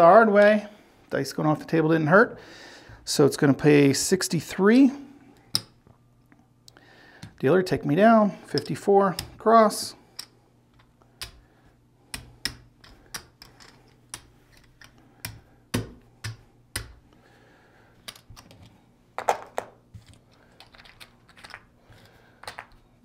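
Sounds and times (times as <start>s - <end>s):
casino chips clicking: 12.2s - 15.4s, 20.3s - 22.8s.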